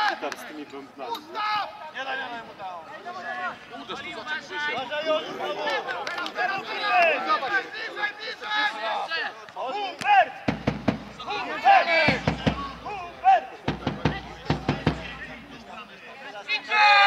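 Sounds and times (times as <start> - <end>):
players shouting: 0.0 - 17.0
sharp knocks: 10.5 - 11.3, 12.0 - 15.4.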